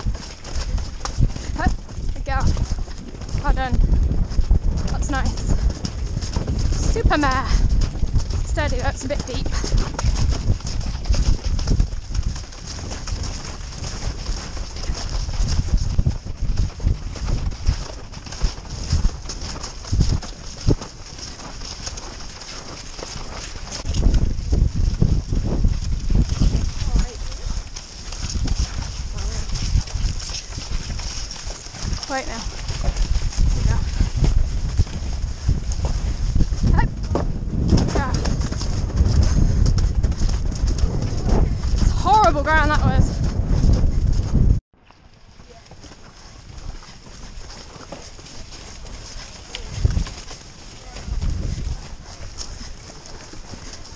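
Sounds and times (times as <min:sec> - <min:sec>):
horse hoofbeats cantering on grass: 0:00.0 - 0:53.9.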